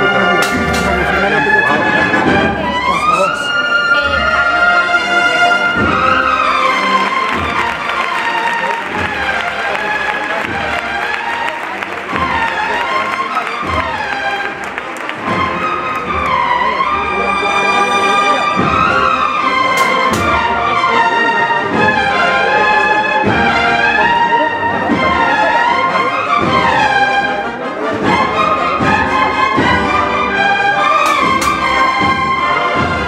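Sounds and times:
brass band playing slow march: 0.0 - 33.0
steady drum beat: 0.1 - 3.4, 4.2 - 17.7, 18.4 - 25.7, 28.0 - 33.0.

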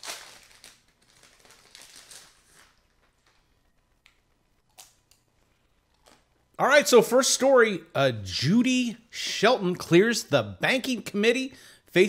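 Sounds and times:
snack bag crinkling: 0.0 - 3.4.

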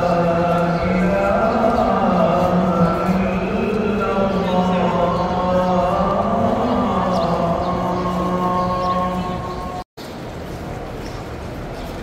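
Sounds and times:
man chanting: 0.0 - 9.8.

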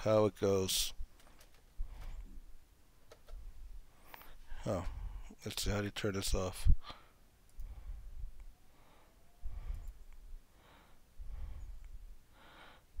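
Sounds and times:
man breathing into microphone: 6.8 - 13.0.

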